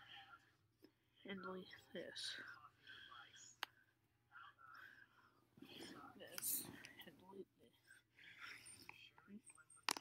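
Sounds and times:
faint hushed voice: 0.0 - 10.0.

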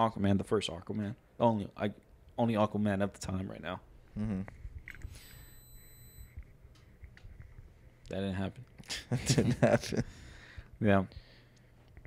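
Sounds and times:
faint high whine: 4.2 - 7.4.

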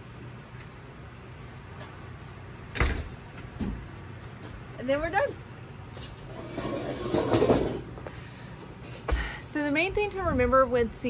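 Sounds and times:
folding chair scraping: 6.0 - 8.0.

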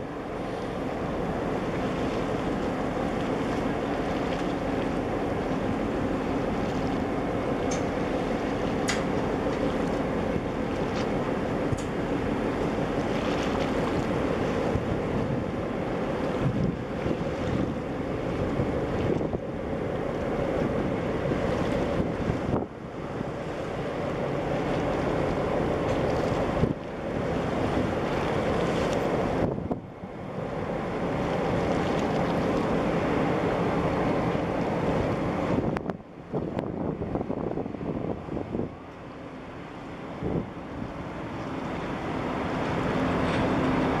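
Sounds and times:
low engine drone: 0.0 - 44.0
wind buffeting microphone: 0.0 - 44.0.

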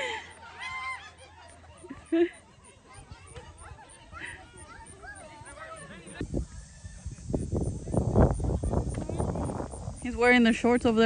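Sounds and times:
people shouting and talking: 0.0 - 11.0.

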